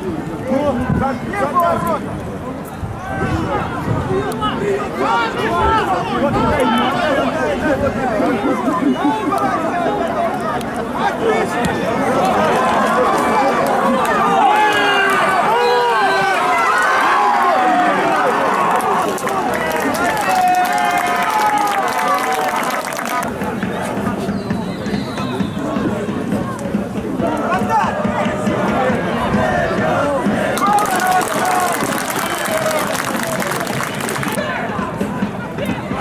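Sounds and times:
crowd shouting: 0:02.9 - 0:26.6, 0:27.2 - 0:35.0.

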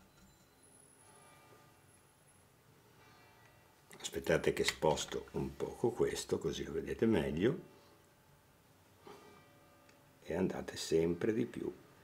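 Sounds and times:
faint soft rustle: 0:02.8 - 0:04.1.

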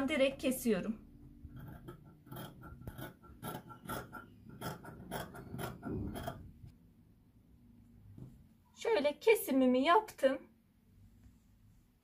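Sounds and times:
scissors cutting fabric: 0:01.5 - 0:06.4.

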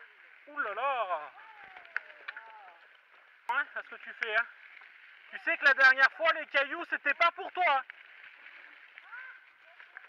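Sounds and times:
bike tyres rolling on dirt trail: 0:00.0 - 0:10.0.

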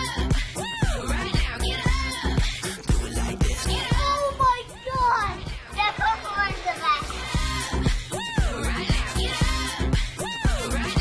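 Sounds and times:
upbeat music with steady beat: 0:00.0 - 0:11.0
children's excited voices: 0:03.6 - 0:07.3.

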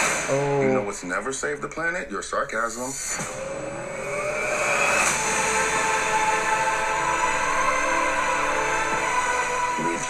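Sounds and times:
whoosh: 0:02.9 - 0:08.4.

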